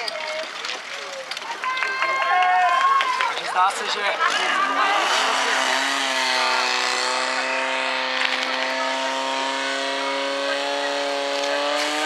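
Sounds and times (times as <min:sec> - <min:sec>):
pump engine running at high revs: 0:04.2 - 0:12.0.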